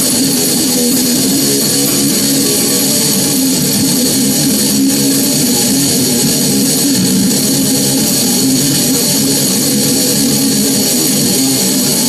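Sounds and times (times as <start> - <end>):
heavy distorted guitar riffing: 0.0 - 12.0.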